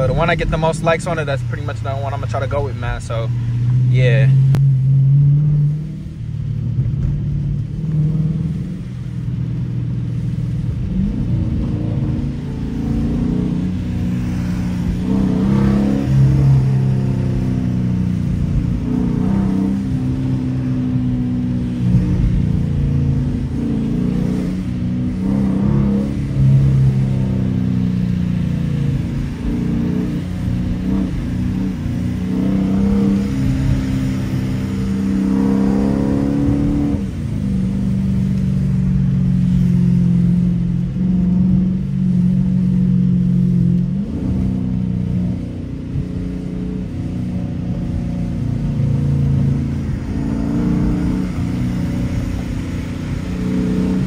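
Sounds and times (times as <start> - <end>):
car engine from inside cabin: 0.0 - 54.0.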